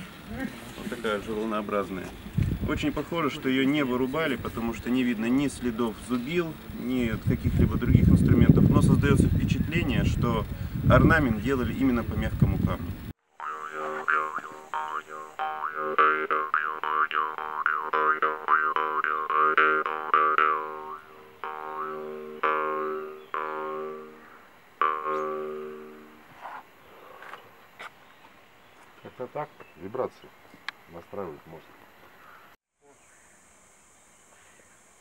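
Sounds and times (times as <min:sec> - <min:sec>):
jaw harp plucking over drone: 0:13.4 - 0:26.2.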